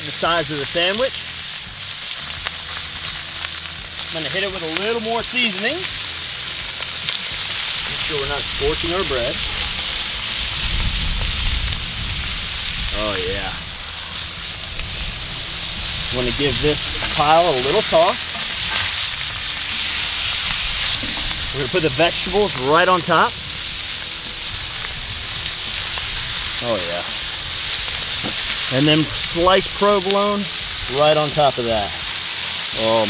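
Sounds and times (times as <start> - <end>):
meat sizzling on a griddle: 0.0 - 33.0
low rumble: 9.3 - 29.8.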